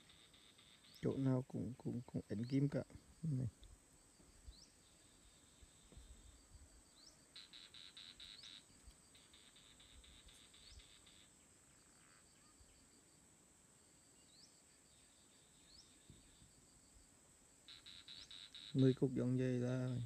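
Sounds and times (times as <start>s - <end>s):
insects droning: 0.0s - 20.0s
insects trilling: 0.0s - 20.0s
short rising insect chirps: 17.7s - 18.8s.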